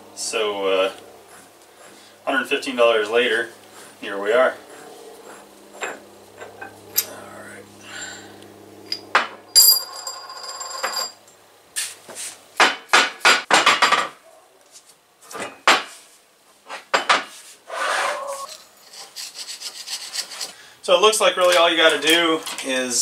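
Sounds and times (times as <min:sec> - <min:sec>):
metal clinks and knocks: 0:08.9 - 0:11.2
metal scrape: 0:17.3 - 0:20.6.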